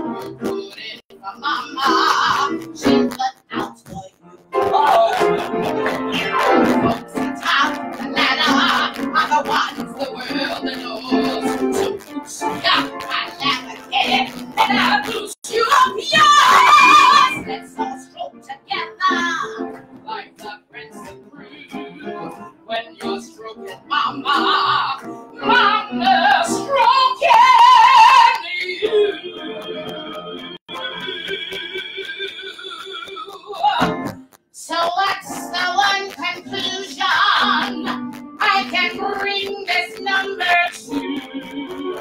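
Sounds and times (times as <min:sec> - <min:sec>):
piano accompaniment: 0:00.0 - 0:03.2, 0:04.4 - 0:15.4, 0:35.0 - 0:42.0
woman singing: 0:00.6 - 0:22.0, 0:22.7 - 0:29.4, 0:33.2 - 0:34.0, 0:34.6 - 0:41.2
piano chords: 0:35.5 - 0:42.0.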